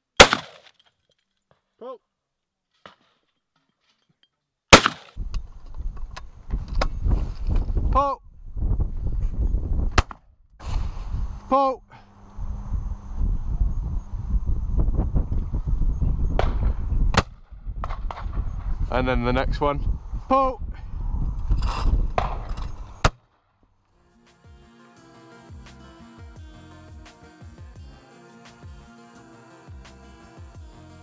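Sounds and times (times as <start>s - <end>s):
sharp snap: 0.2s - 0.7s, 4.8s - 5.2s
shotgun shot: 0.2s - 0.7s, 4.7s - 5.2s.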